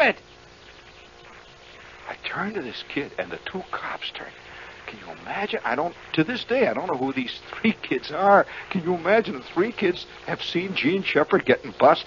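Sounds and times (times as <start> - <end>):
man speaking: 0.0 - 0.2, 2.0 - 12.0
faint buzzing hum: 0.0 - 12.0
recording hiss: 0.0 - 12.0.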